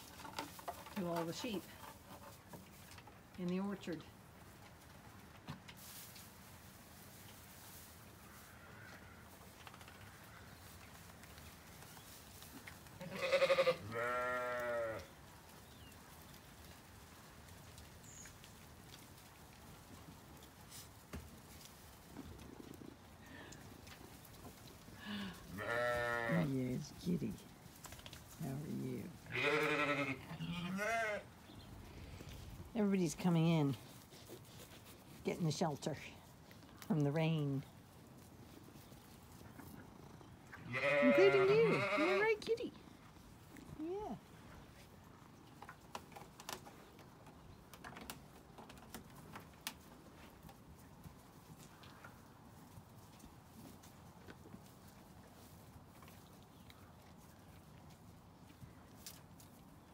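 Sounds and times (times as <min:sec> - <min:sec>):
sheep bleating: 0:13.0 - 0:15.1, 0:25.1 - 0:26.5, 0:29.3 - 0:31.3, 0:40.6 - 0:42.4.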